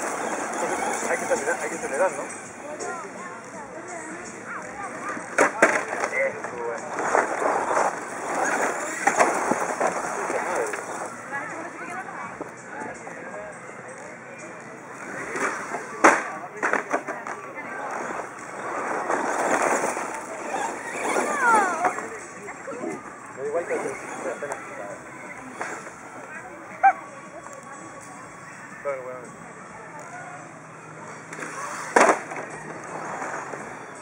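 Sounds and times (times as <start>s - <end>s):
rc truck driving on dirt: 0.0s - 34.0s.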